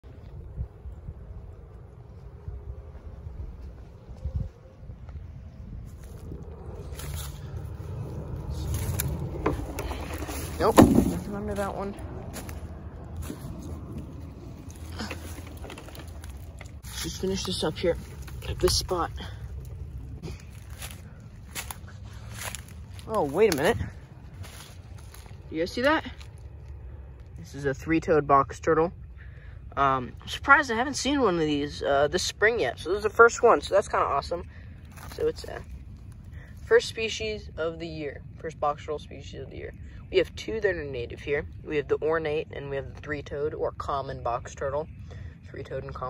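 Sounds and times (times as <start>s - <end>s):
wind buffeting microphone: 0.0s - 27.4s
steady low rumble: 0.0s - 46.0s
footsteps crunching through leaves: 5.8s - 26.6s, 34.8s - 36.3s
rustling: 5.8s - 27.5s
handling knocks: 9.4s - 11.6s.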